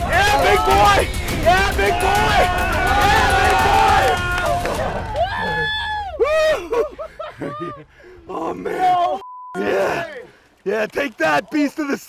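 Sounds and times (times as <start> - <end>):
men groaning and shouting: 0.0 - 10.4
censor bleep: 9.2 - 9.6.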